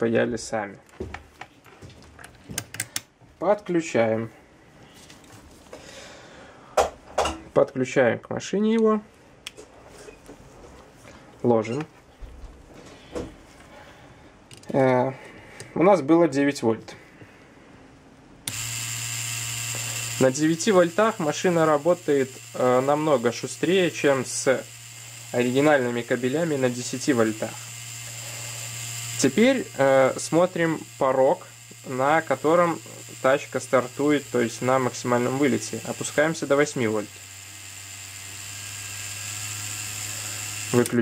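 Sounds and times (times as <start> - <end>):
tattoo pen motor buzzing: 18.4 - 41.0.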